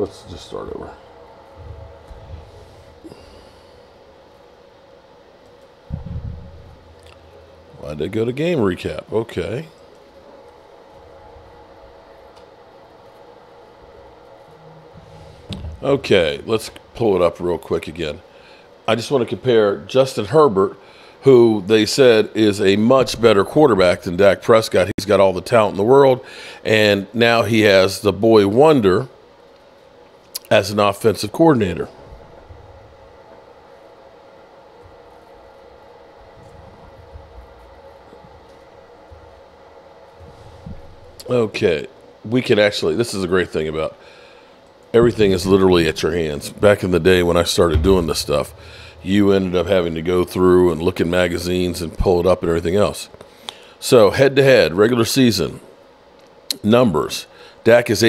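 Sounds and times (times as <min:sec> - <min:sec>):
room hum: 0:00.0 - 0:58.0.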